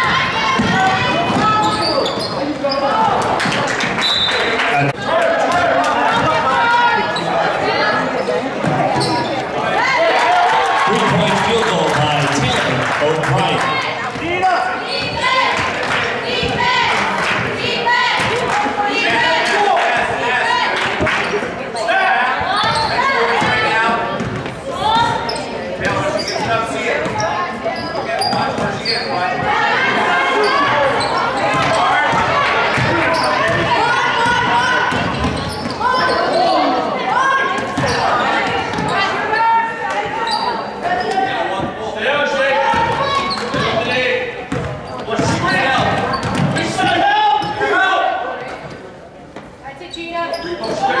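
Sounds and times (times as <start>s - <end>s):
overlapping voices calling out: 9.4s - 24.1s.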